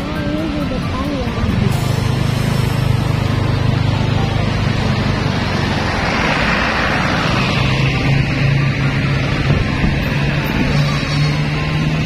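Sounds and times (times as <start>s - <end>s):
background music: 0.0s - 12.0s
road and wind noise: 0.0s - 12.0s.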